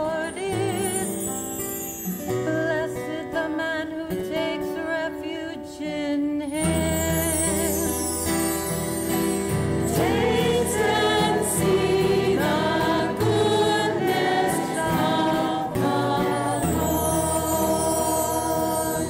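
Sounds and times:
woman singing into a microphone: 0.0s - 1.4s, 2.3s - 8.2s, 10.0s - 19.0s
sustained instrumental accompaniment: 8.0s - 19.0s.

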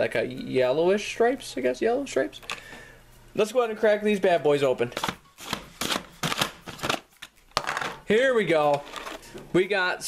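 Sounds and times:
plastic lid scraping and creaking: 8.7s - 9.5s.

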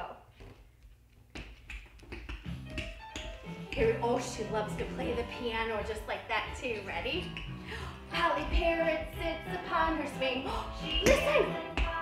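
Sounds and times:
children's dance music: 2.4s - 12.0s.

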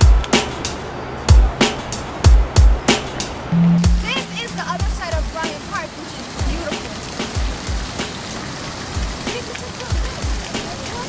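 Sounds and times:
fountain water splashing: 0.0s - 11.0s
short low thumps: 3.5s - 5.3s.

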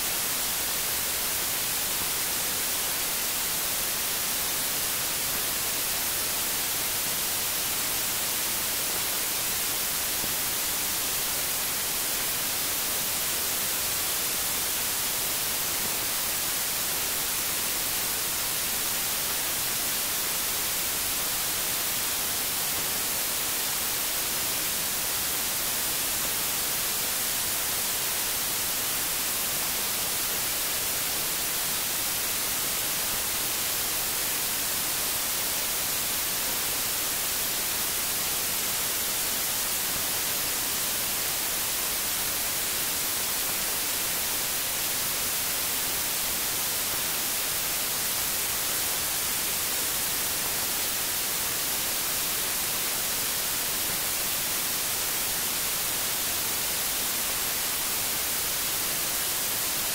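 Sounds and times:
static hiss: 0.0s - 59.9s.

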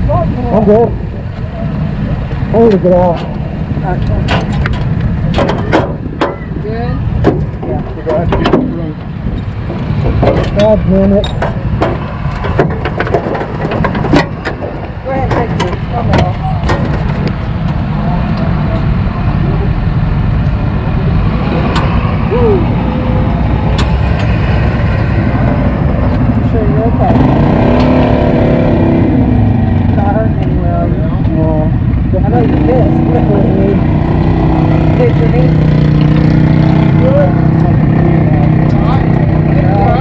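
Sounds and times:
vehicle engine running: 0.0s - 40.0s
sharp clanks and knocks: 4.0s - 6.5s, 7.2s - 17.8s.

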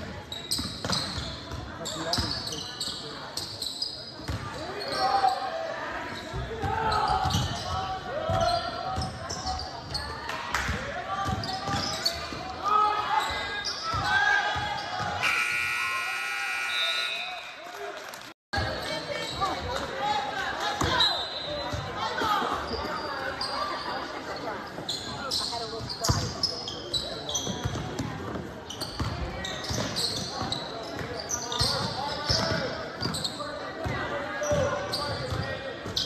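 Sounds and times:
crowd chatter: 0.0s - 36.0s
sneaker squeaks: 0.2s - 5.5s, 6.1s - 10.2s, 11.3s - 12.4s, 13.2s - 14.1s, 20.8s - 36.0s
scoreboard horn: 15.2s - 17.5s.

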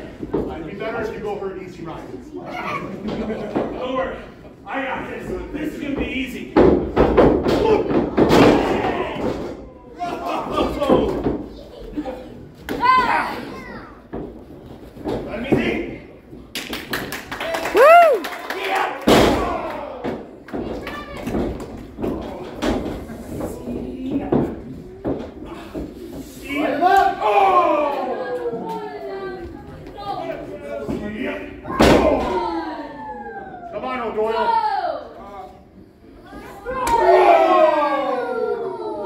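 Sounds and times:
people shouting: 17.7s - 20.1s, 36.7s - 39.0s.

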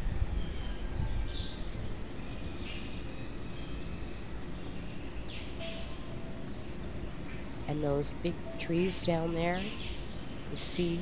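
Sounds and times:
steady low rumble: 0.0s - 11.0s
long high whistling calls: 0.3s - 11.0s
birds calling: 4.7s - 11.0s.

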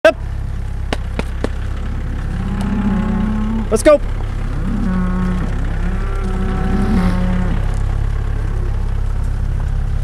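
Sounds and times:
steady low rumble: 0.2s - 10.0s
cattle shuffling: 0.9s - 9.9s
loud animal call: 1.9s - 9.0s.

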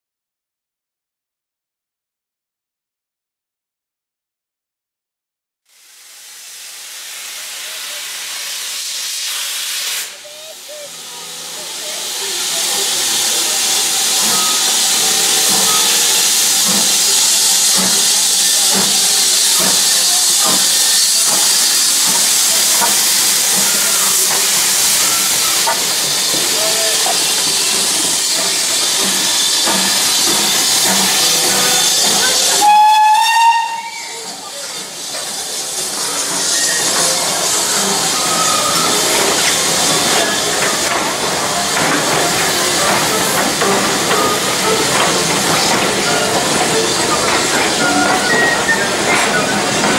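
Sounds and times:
steam hissing: 5.7s - 49.9s
shrill steam whistle: 8.2s - 40.7s, 43.0s - 49.9s.

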